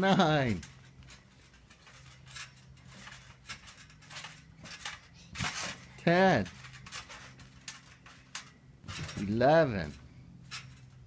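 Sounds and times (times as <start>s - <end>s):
trampoline clicks: 0.0s - 11.0s.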